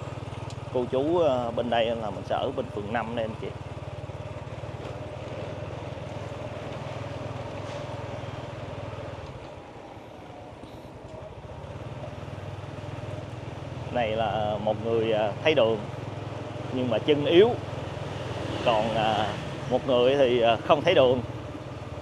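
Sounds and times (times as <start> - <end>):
small motorcycle engine running: 0.0 - 9.2, 11.3 - 22.0.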